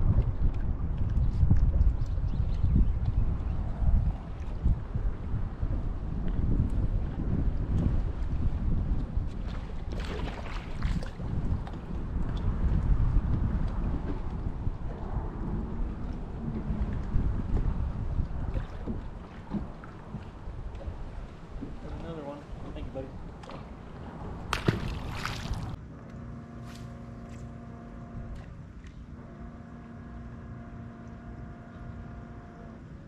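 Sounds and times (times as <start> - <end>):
wind buffeting microphone: 0.0 - 25.8.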